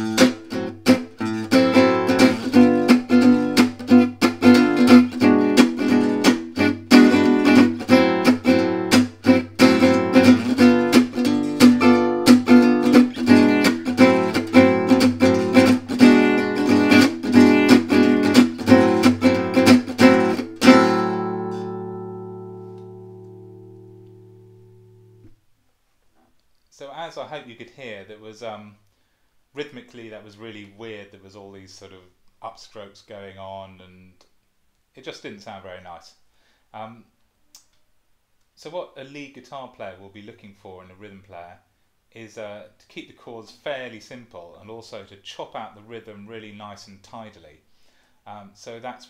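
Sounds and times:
acoustic guitar strumming: 0:00.0 - 0:25.3.

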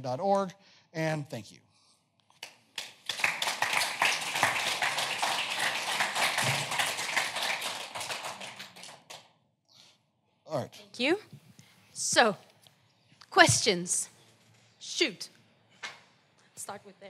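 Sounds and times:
audience applauding: 0:02.4 - 0:09.3.

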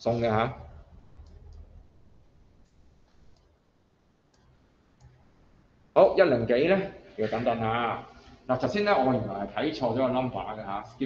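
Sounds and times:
low room hum: 0:00.0 - 0:11.0
computer mouse clicks: 0:01.0 - 0:01.8, 0:02.6 - 0:03.6, 0:04.3 - 0:05.3.

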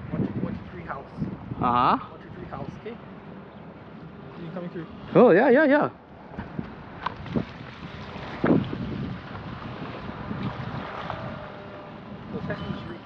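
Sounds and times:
wind buffeting microphone: 0:00.0 - 0:13.0
small waves washing against rocks: 0:07.0 - 0:12.0.

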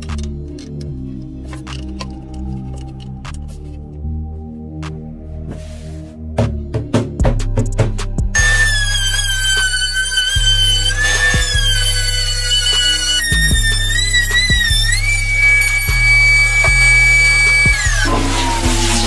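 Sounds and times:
background music with steady beat: 0:00.0 - 0:19.0
wood router whining: 0:08.4 - 0:19.0.

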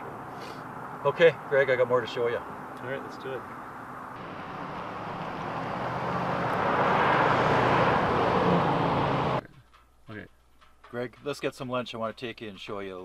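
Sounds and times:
vehicle rushing past: 0:03.5 - 0:09.4.

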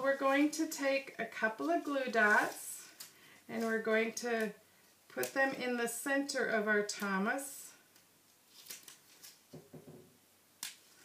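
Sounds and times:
handling glue dots and cardstock: 0:00.2 - 0:06.0.

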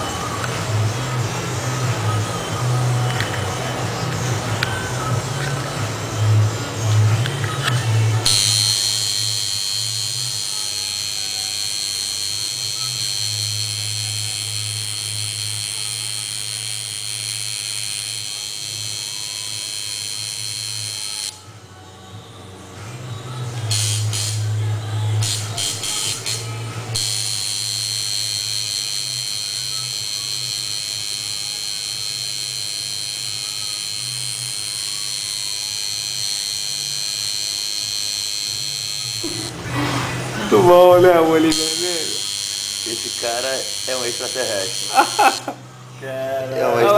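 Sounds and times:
tattoo machine buzzing: 0:00.0 - 0:21.5, 0:23.3 - 0:45.8
high whine: 0:23.1 - 0:46.9.

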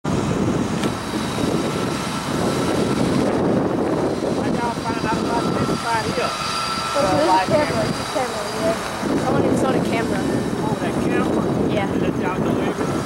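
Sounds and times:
low rumbling noise: 0:00.0 - 0:13.0
faint voices: 0:04.3 - 0:13.0.

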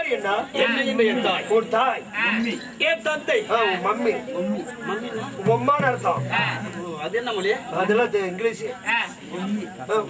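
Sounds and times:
men's voices in dialogue: 0:00.0 - 0:10.0.

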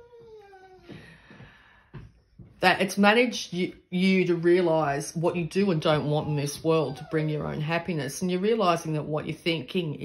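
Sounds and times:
cat meowing: 0:00.0 - 0:01.0.

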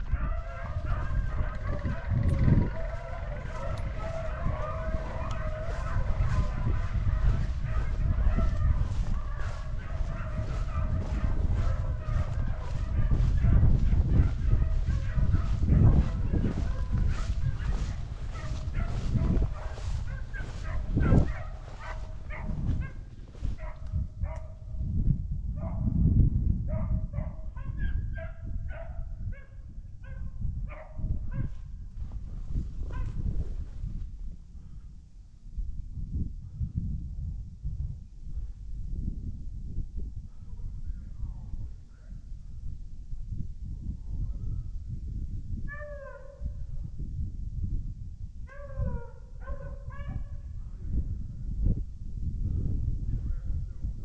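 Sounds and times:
beagles baying: 0:00.0 - 0:23.8.

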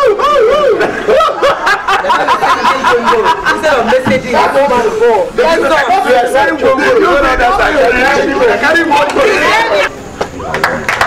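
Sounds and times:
scattered laughter: 0:00.5 - 0:03.9.

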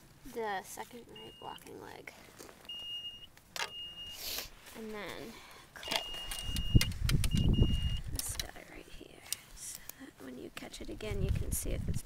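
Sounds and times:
high electronic beeps: 0:01.1 - 0:01.6, 0:02.7 - 0:04.2, 0:05.8 - 0:08.1
handling rustle: 0:04.4 - 0:09.9.

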